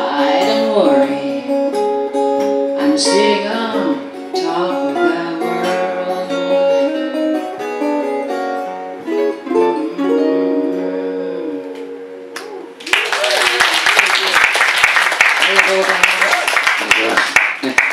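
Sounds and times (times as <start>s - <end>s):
fingerpicked acoustic guitar: 0.0s - 12.8s
audience applause: 12.4s - 17.9s.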